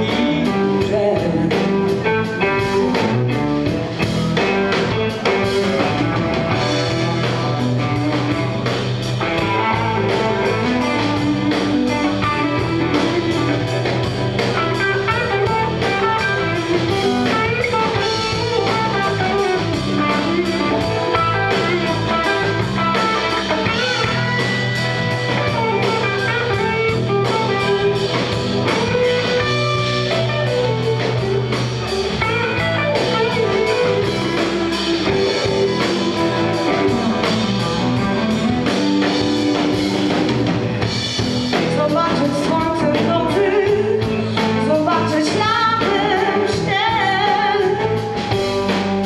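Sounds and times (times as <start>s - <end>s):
bass guitar: 0.0s - 49.0s
electric guitars: 0.0s - 49.0s
steady drum beat: 0.0s - 49.0s.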